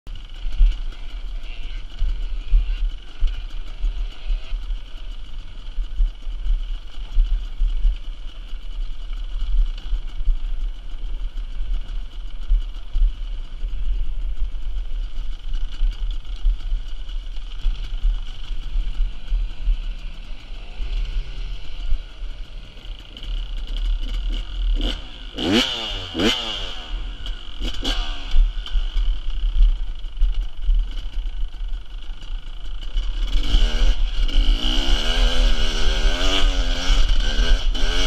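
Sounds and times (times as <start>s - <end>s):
motorcycle engine rumble: 0.1s - 38.0s.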